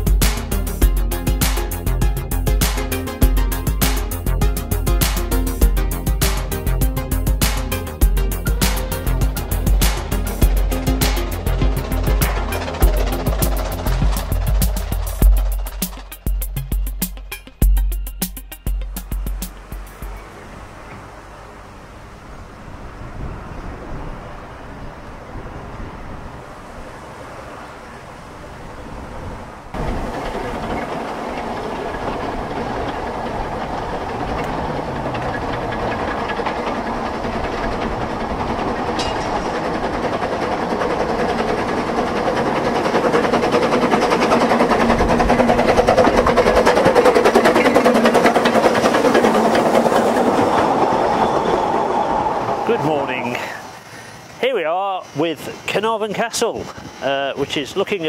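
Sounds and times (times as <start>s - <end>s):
train wheels clacking over rail joints: 0.0s - 20.3s, 29.7s - 58.0s.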